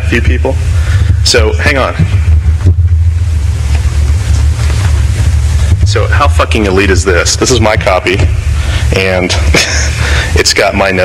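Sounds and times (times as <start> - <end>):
faint hiss: 0.0 - 11.0
loud low hum: 0.0 - 11.0.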